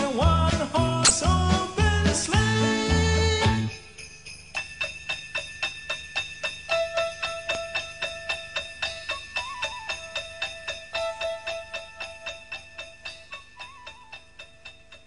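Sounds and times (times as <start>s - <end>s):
sleigh bells shaken: 0.0s - 15.0s
simple melody: 6.5s - 15.0s.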